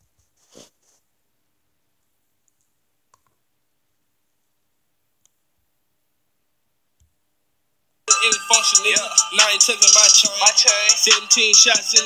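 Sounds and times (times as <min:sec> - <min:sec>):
computer mouse clicks: 0:02.5 - 0:03.4.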